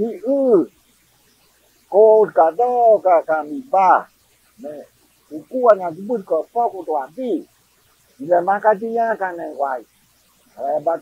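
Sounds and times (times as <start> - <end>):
man speaking: 0.0 - 0.7, 1.9 - 7.5, 8.2 - 9.8, 10.6 - 11.0.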